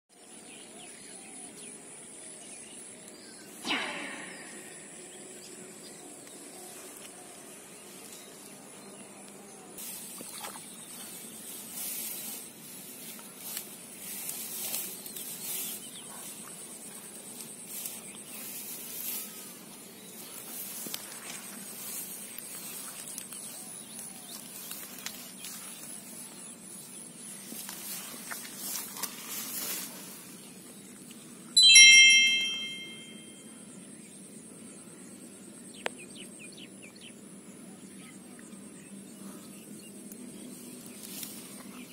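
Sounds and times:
loud ringing tone: 31.6s - 33.4s.

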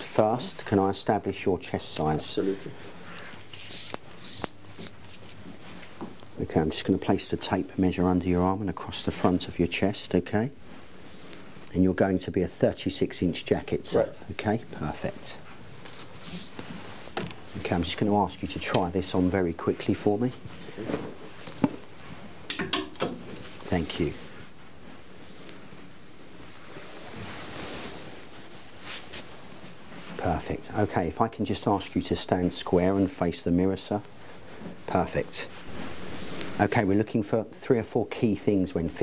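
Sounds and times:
fabric rustling: 0.0s - 22.5s, 23.1s - 31.1s, 31.7s - 37.6s
hanger clicks: 22.5s - 23.2s
clothes hanger knocking: 22.5s - 23.3s.

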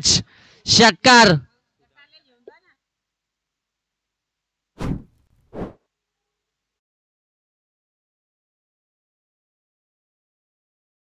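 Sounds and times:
whoosh sound effect: 4.8s - 5.8s.

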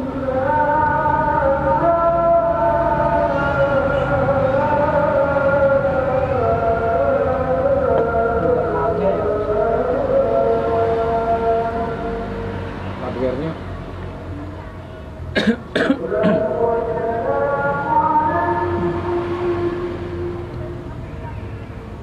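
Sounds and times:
man chanting call to prayer: 0.0s - 13.6s, 15.9s - 20.8s.

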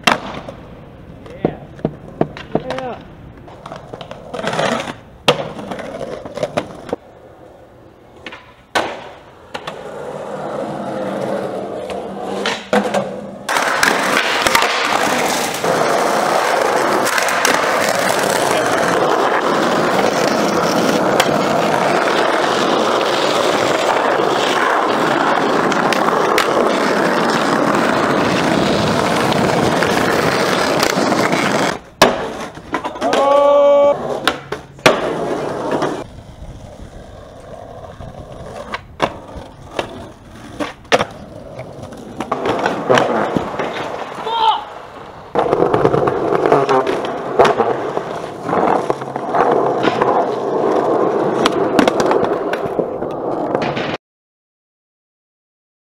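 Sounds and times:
skateboard clacks: 0.0s - 7.0s, 8.1s - 54.0s
skateboard wheels rolling on concrete: 0.0s - 54.0s.

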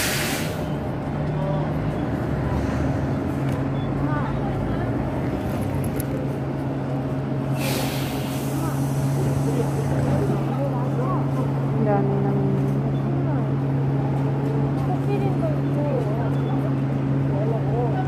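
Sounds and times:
short hiss of air: 0.0s - 0.7s, 7.5s - 9.8s
faint voices: 8.2s - 18.0s.

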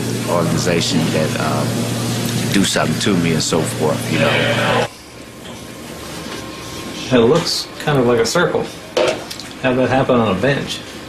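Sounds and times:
room hiss and hum: 0.0s - 11.0s.

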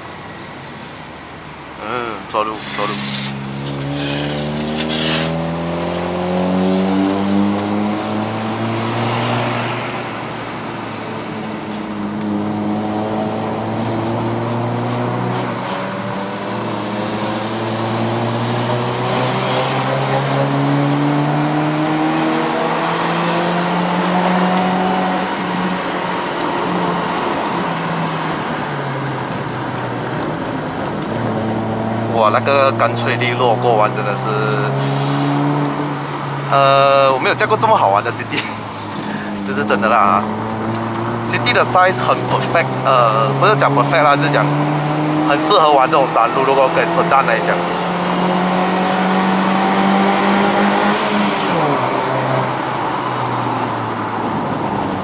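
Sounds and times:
car engine accelerating uphill: 0.0s - 55.0s.

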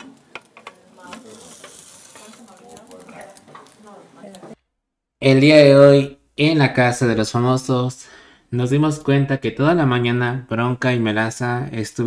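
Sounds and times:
utensil clicking against pan: 0.0s - 4.4s
food sizzling in a frying pan: 0.0s - 4.6s.

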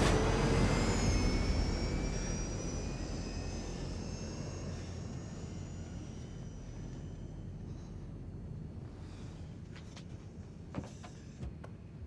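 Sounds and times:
jet engines roaring with whine: 0.0s - 11.4s.

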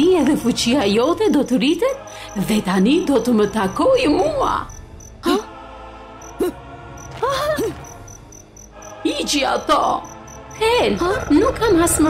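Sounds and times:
crickets chirping: 0.0s - 12.0s
soft background music: 0.0s - 12.0s.

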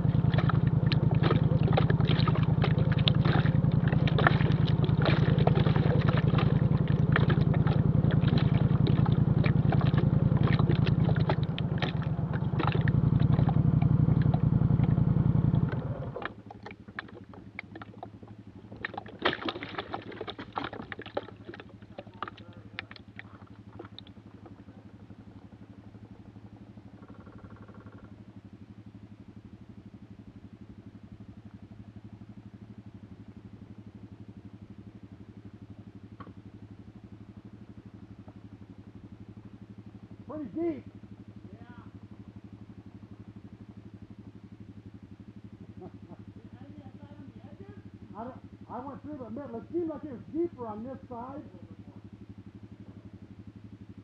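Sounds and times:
atv engine running: 0.0s - 54.0s.

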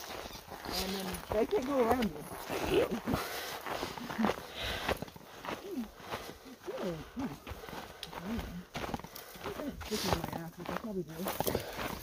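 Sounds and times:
footsteps on dirt trail: 0.0s - 12.0s.

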